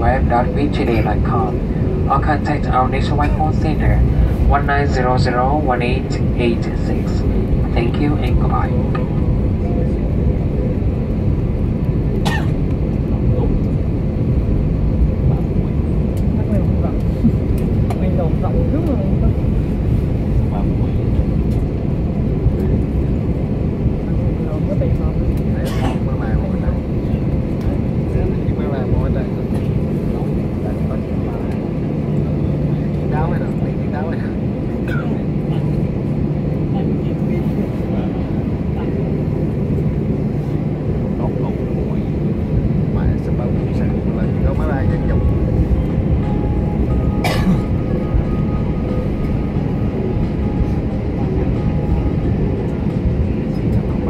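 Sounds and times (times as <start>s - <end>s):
airliner cabin rumble: 0.0s - 54.0s
passengers talking faintly: 0.0s - 54.0s.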